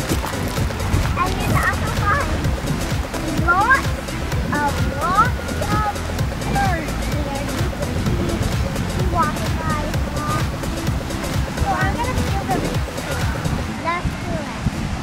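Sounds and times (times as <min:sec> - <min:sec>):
high gliding calls: 0:00.0 - 0:13.8
distant voices: 0:00.0 - 0:15.0
music: 0:00.0 - 0:15.0
steady wind: 0:00.0 - 0:15.0
surf rumble: 0:00.0 - 0:15.0.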